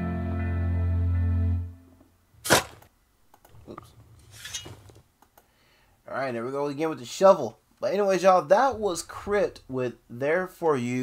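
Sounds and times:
shovel scraping dirt: 0:02.4 - 0:02.9, 0:04.2 - 0:05.0.

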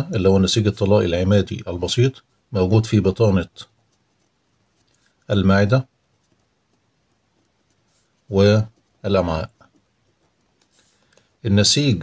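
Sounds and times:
faint pen scratching on paper: 0:00.0 - 0:12.0.

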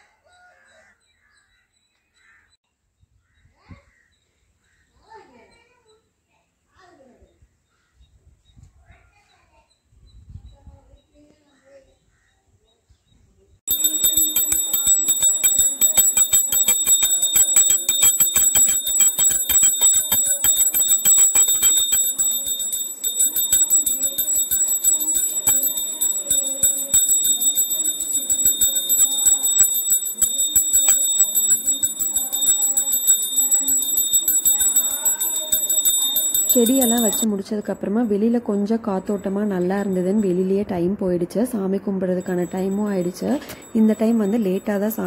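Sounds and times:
bell rung rapidly: 0:13.7 - 0:37.3, 0:42.2 - 0:45.0.

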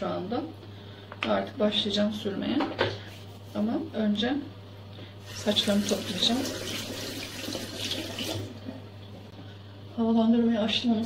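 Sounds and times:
ventilation fan humming: 0:00.0 - 0:11.0.

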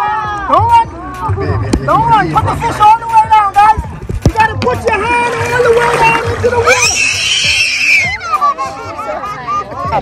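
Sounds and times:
excited voices: 0:05.0 - 0:10.0
person screaming high-pitched: 0:06.7 - 0:08.2.

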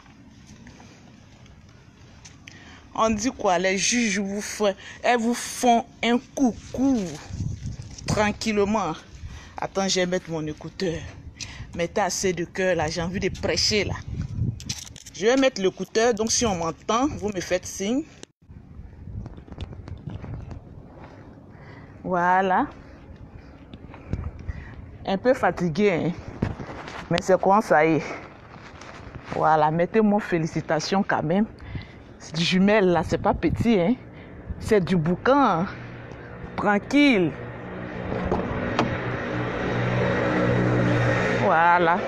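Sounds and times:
vehicle engine humming: 0:18.1 - 0:29.2, 0:31.2 - 0:42.0.

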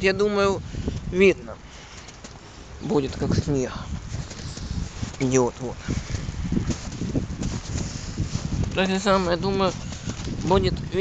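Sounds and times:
wind rumbling on microphone: 0:00.0 - 0:11.0
footsteps in snow: 0:03.1 - 0:10.6.

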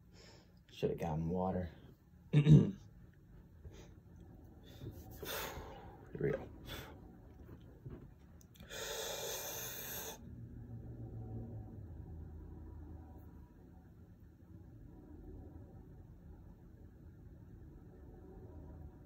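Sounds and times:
man inhaling deeply: 0:08.6 - 0:10.2.

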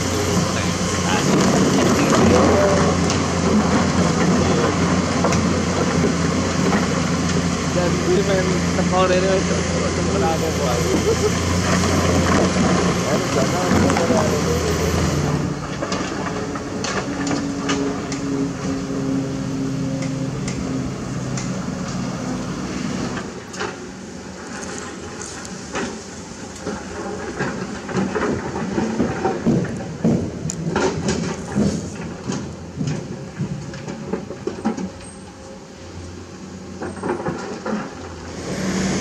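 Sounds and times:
excavator diesel engine: 0:00.0 - 0:39.0.

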